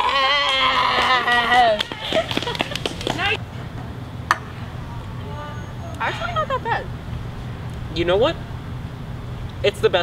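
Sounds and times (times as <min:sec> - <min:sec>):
distant traffic rumble: 0:00.0 - 0:10.0.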